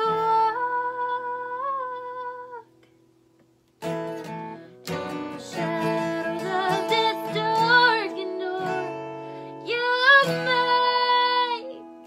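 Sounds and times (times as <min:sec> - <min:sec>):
woman singing: 0:00.0 - 0:02.7, 0:04.9 - 0:12.0
acoustic guitar strumming: 0:03.8 - 0:12.0.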